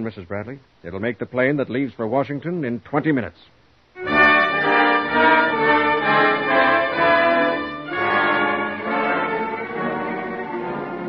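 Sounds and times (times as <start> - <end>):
dramatic orchestral music with brass: 4.0 - 11.0.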